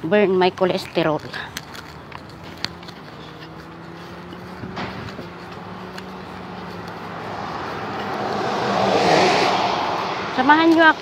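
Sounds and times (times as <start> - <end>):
car passing by: 2.4 - 11.0.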